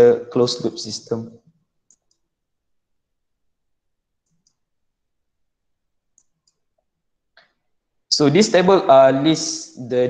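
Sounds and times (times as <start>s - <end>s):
computer mouse clicks: 1.8s - 2.3s, 4.2s - 4.7s, 6.1s - 7.6s.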